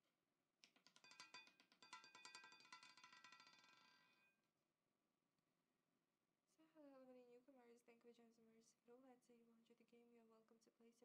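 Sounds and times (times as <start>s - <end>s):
roulette ball clattering: 0.6s - 4.2s.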